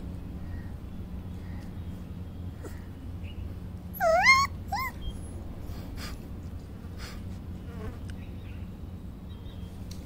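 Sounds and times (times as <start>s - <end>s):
puppy yipping: 4.0s - 5.3s.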